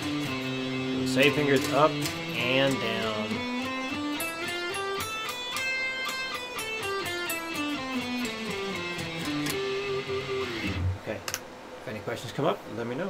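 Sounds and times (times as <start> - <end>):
electric guitar picking a scale: 0.0 - 11.0.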